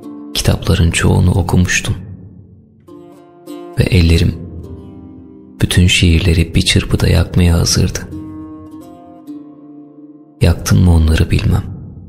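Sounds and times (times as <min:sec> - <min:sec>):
plucked string instrument notes: 0:00.0 - 0:11.1.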